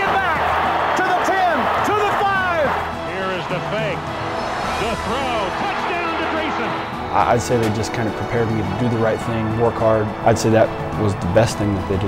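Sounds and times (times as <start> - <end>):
background music: 0.0 - 12.0
stadium crowd noise: 0.0 - 12.0.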